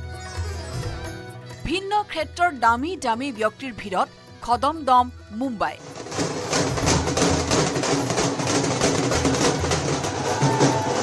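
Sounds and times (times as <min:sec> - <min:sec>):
rhythmic drum and percussion music: 0:05.8 - 0:11.0.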